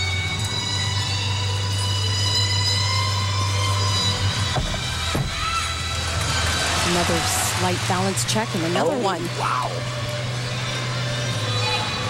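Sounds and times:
background music long notes: 0:00.0 - 0:12.0.

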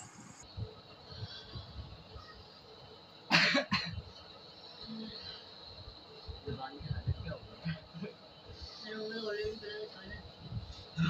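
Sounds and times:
boy coughing: 0:03.3 - 0:04.0.

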